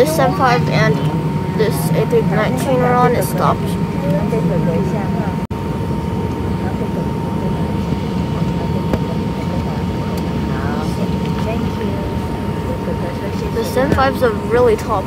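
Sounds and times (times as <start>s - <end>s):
aircraft cabin rumble: 0.0s - 15.0s
faint passenger voices: 0.0s - 15.0s
thin steady engine whine: 0.0s - 15.0s.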